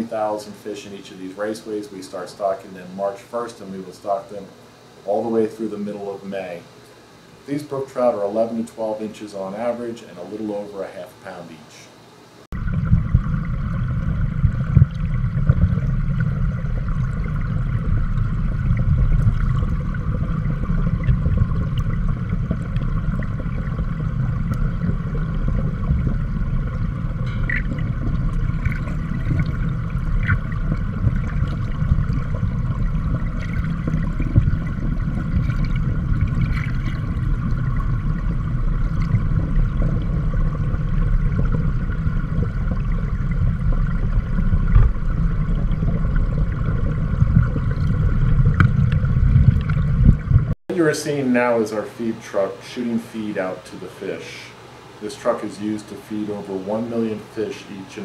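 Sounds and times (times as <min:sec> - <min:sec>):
underwater water rushing: 0:12.5 - 0:50.6.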